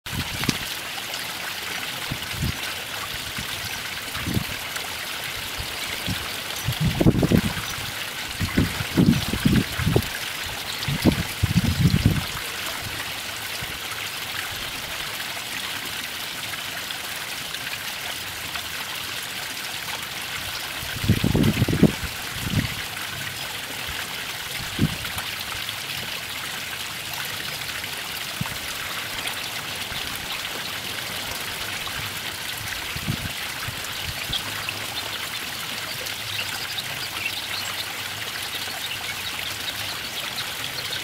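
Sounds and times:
water trickling over stones: 0:00.1 - 0:41.0.

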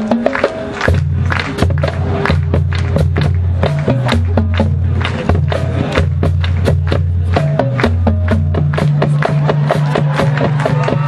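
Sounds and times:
marching band playing: 0:00.0 - 0:11.0
percussion hits: 0:00.0 - 0:11.0.

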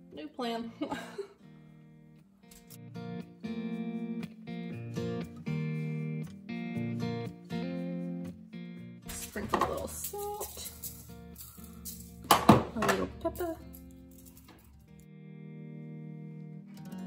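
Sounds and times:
acoustic guitar music: 0:00.0 - 0:17.0.

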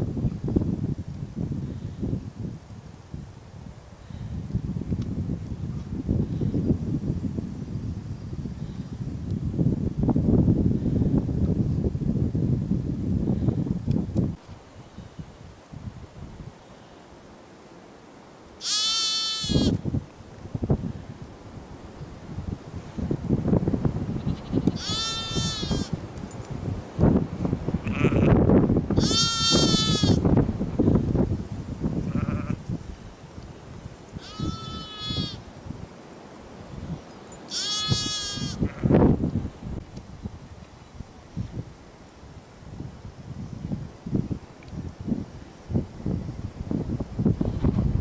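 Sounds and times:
wind rumbling on microphone: 0:00.0 - 0:17.0, 0:18.6 - 0:48.0
lamb bleating: 0:18.6 - 0:19.8, 0:24.2 - 0:25.9, 0:27.8 - 0:28.4, 0:29.0 - 0:30.2, 0:32.1 - 0:32.6, 0:34.2 - 0:35.4, 0:37.5 - 0:38.9.

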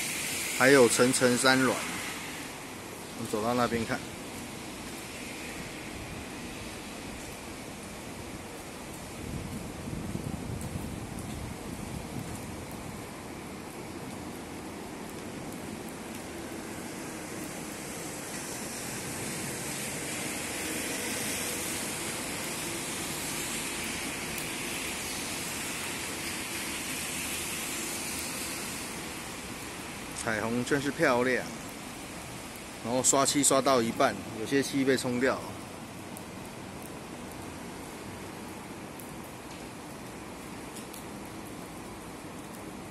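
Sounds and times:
outdoor background hiss: 0:00.0 - 0:42.9.

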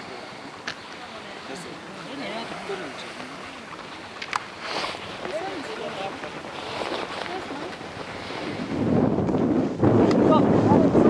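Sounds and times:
faint voices: 0:00.0 - 0:08.8
wind buffeting microphone: 0:01.7 - 0:11.0.

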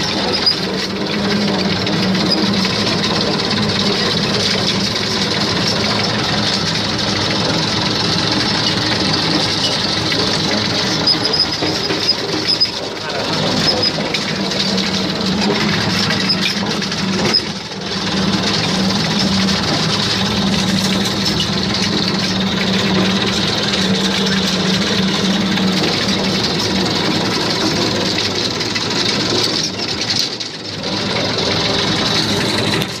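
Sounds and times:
even clatter: 0:00.0 - 0:33.0
tractor engine running: 0:00.0 - 0:33.0.

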